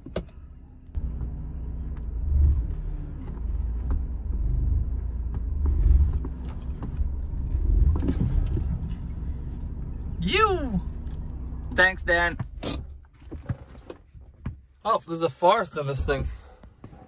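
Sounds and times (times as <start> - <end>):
car engine rumble: 0.0 - 17.0.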